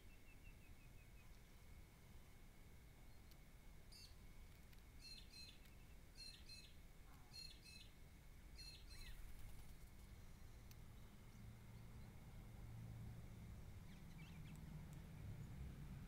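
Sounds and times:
faint bird calls: 0:05.0 - 0:08.0, 0:08.6 - 0:12.2.

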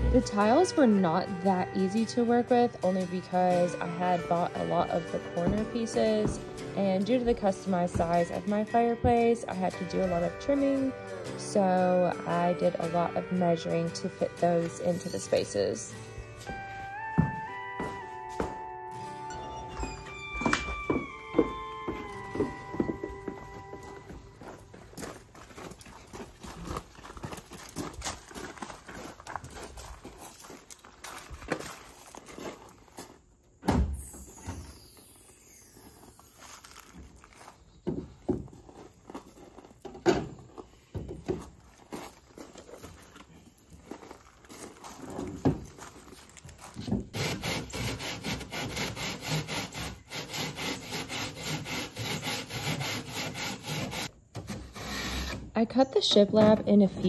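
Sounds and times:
hand saw cutting: 0:47.1 - 0:55.5.

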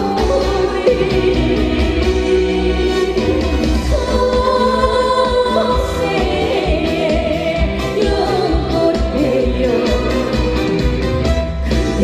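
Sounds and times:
woman singing into a microphone: 0:00.0 - 0:10.4, 0:11.6 - 0:12.0
music with pulsing bass: 0:00.0 - 0:12.0.

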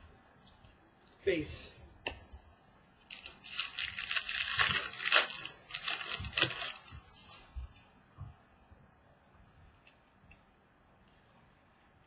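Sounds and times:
foil wrapper crinkling: 0:03.1 - 0:07.5.

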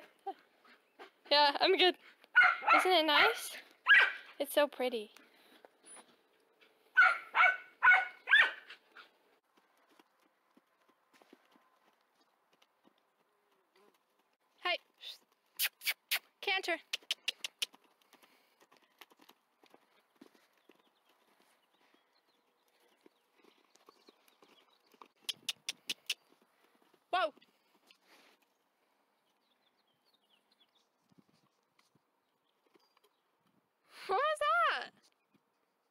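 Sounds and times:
horse moving about: 0:00.0 - 0:16.2, 0:16.8 - 0:33.7
quick sharp clicks: 0:15.6 - 0:17.8, 0:25.2 - 0:26.2.

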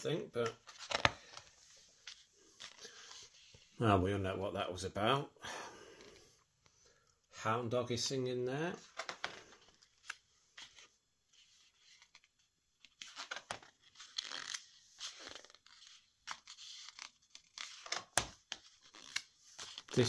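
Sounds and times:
book pages turning and rustling: 0:00.4 - 0:03.8, 0:08.7 - 0:20.0.

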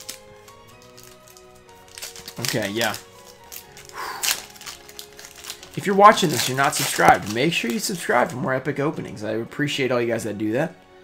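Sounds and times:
foil wrapper crinkling and tearing: 0:00.0 - 0:08.5
quiet background music: 0:00.0 - 0:11.0.

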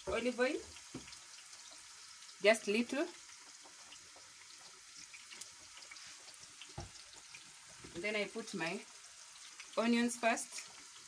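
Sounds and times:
fries frying in hot oil: 0:00.0 - 0:11.0.

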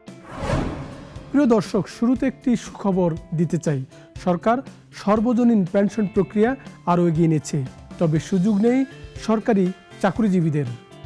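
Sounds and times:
whoosh sound effect: 0:00.0 - 0:02.4
soft background music: 0:00.0 - 0:11.0.

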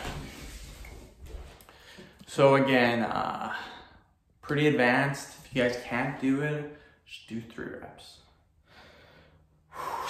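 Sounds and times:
clothing rustling on microphone: 0:00.0 - 0:01.6.

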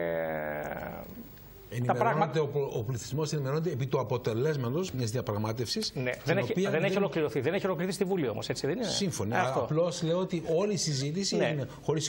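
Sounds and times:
man speaking: 0:01.7 - 0:12.0.

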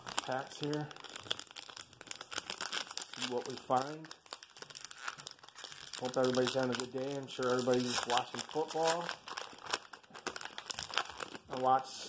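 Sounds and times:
card pack wrapper crinkling: 0:00.0 - 0:11.8.

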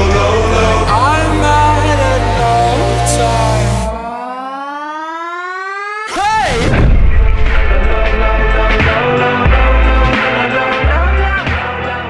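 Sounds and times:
synthesized tone sweeping upward: 0:00.0 - 0:09.4.

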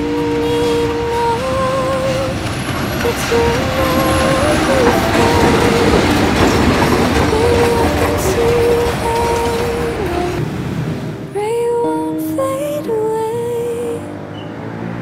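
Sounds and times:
train wheels rumbling on rails: 0:00.0 - 0:11.2
sung melody: 0:00.0 - 0:15.0.

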